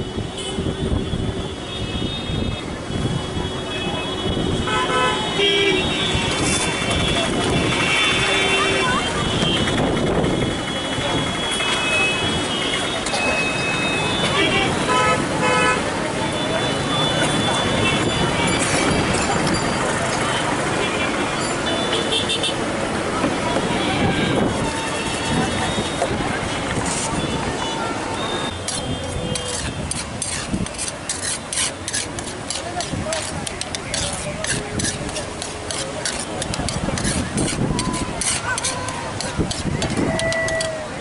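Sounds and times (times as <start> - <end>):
voices outdoors: 2.4 - 41.0.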